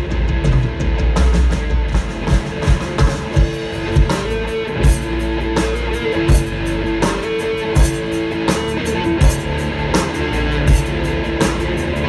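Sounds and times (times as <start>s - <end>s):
heavy low drum hits: 0.0s - 5.4s
rock band playing: 0.0s - 12.0s.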